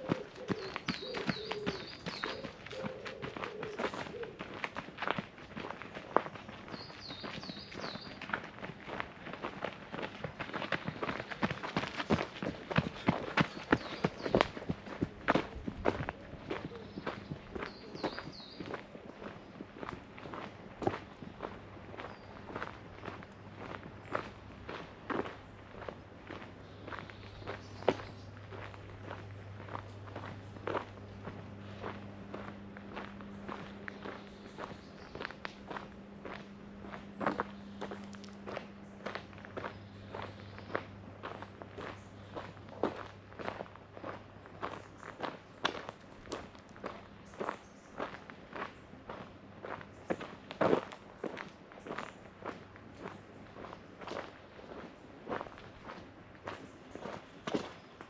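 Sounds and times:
faint low hum: 0.0s - 58.0s
footsteps crunching on path: 0.0s - 58.0s.

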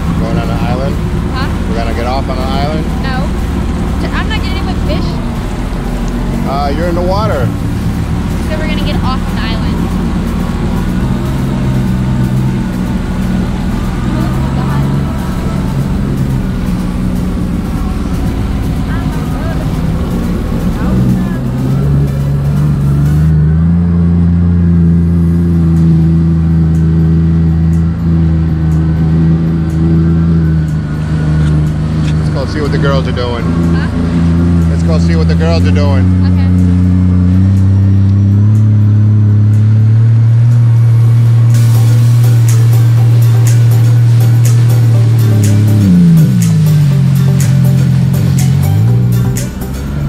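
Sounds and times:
watercraft engine running: 0.0s - 50.0s.

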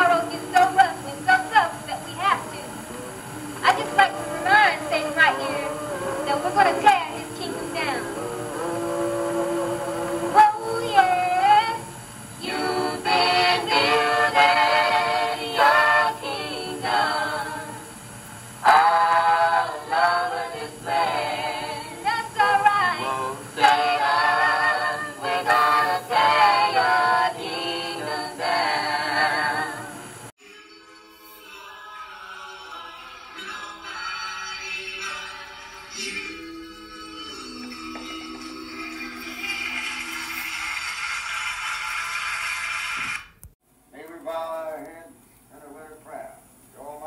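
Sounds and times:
gospel music: 0.0s - 41.9s.

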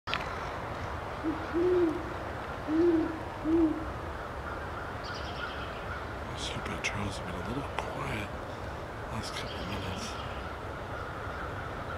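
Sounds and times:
owl hooting: 1.2s - 3.9s, 9.2s - 11.9s.

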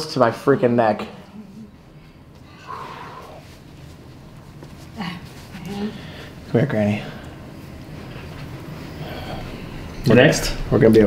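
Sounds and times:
room hum and hiss: 0.0s - 11.0s
faint murmur: 1.0s - 3.6s.

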